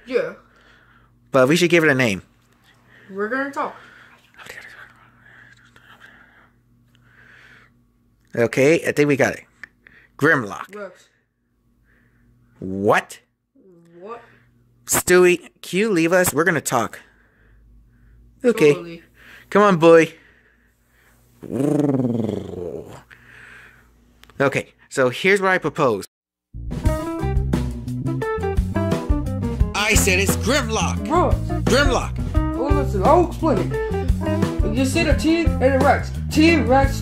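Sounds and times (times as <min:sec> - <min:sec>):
low dinosaur growl: 0:21.4 - 0:23.0.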